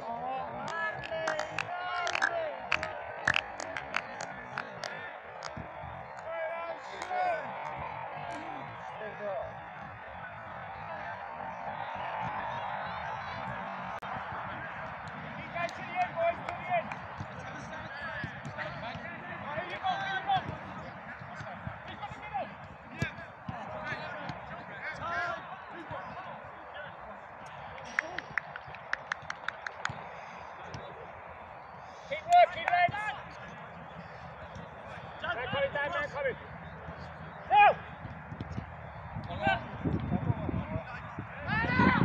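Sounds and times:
players shouting: 0.0 - 42.0
loud shout: 40.6 - 42.0.

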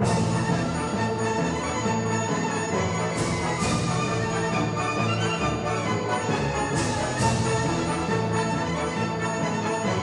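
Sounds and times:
orchestral theme music: 0.0 - 10.0.

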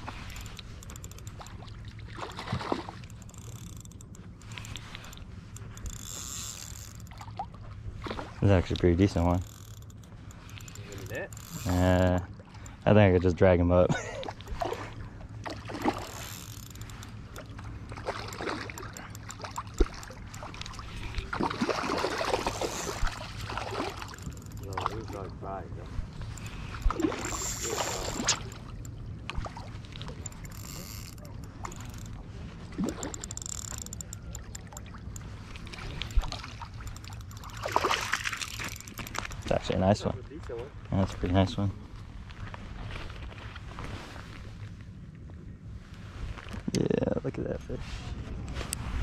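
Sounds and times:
fishing reel gear whirring: 0.0 - 7.5, 8.7 - 13.0, 15.4 - 25.3, 26.1 - 29.1, 29.9 - 39.6
reel clicks: 0.0 - 7.6, 8.6 - 12.9, 15.5 - 25.2, 26.1 - 39.8.

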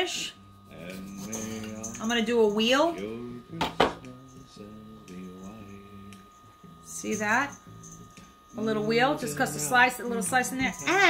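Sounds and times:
background music with singing: 0.2 - 11.0.

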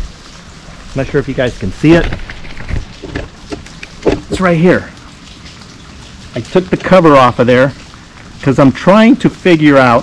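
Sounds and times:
rain patter: 0.0 - 10.0.

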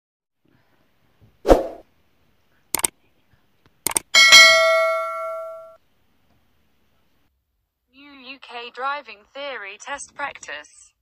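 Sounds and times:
notification bell ding: 4.2 - 5.8.

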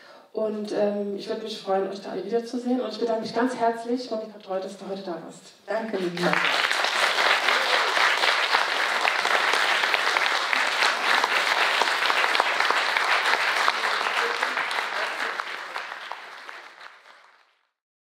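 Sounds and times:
audience applauding: 6.0 - 17.7.

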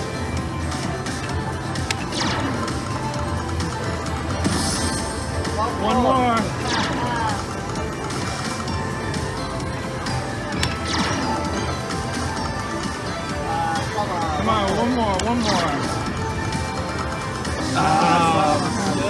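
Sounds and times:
slot machine bonus music and effects: 0.0 - 19.0.

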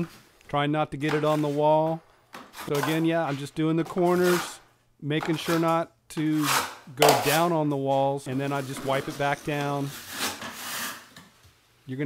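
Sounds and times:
drywall knife scraping compound: 1.0 - 11.5.

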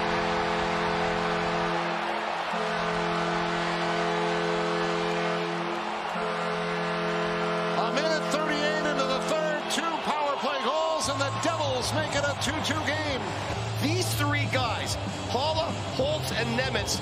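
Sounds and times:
arena goal horn: 0.0 - 17.0
crowd cheering: 0.0 - 17.0.

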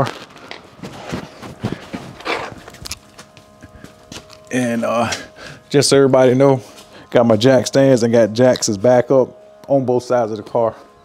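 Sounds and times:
clothing rustle: 0.0 - 4.4
scuffs on concrete floor: 0.0 - 5.3, 6.6 - 7.1.

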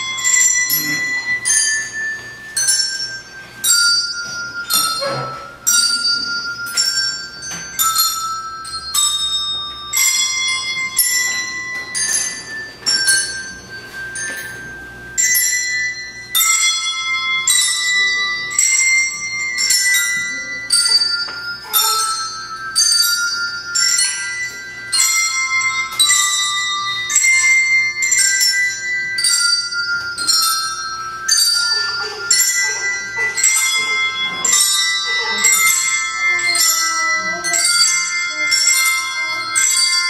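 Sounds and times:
small bells playing melody: 0.0 - 40.0.

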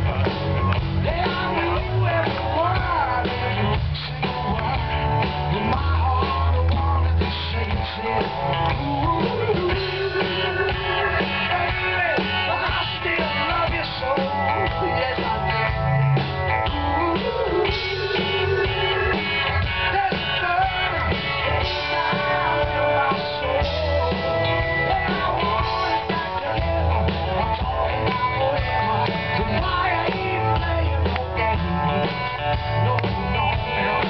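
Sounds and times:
live rock band playing: 0.0 - 34.0.

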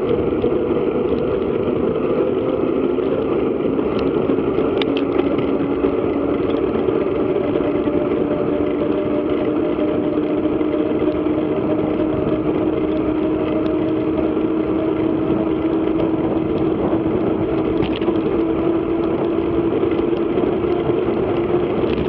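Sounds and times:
bike tyres humming on road: 0.0 - 22.0
wind rushing on microphone: 0.0 - 22.0.

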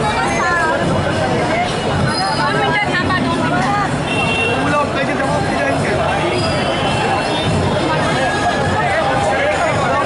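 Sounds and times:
crowd talking and calling: 0.0 - 10.0.

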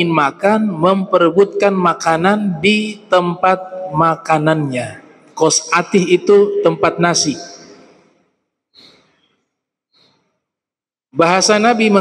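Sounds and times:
breath into a microphone: 7.8 - 10.4.

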